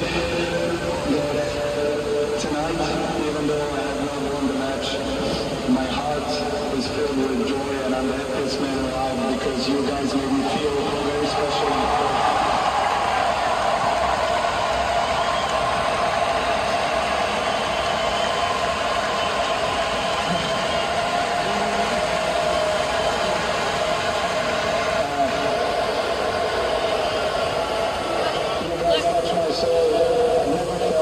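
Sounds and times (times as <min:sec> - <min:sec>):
crowd hubbub: 0:00.0 - 0:31.0.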